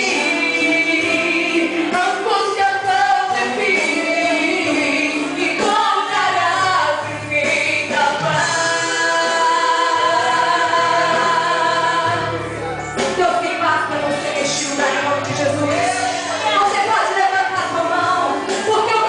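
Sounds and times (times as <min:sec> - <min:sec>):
woman singing gospel song: 0:00.0 - 0:12.4, 0:13.0 - 0:19.0
instrumental backing with bass: 0:00.0 - 0:19.0.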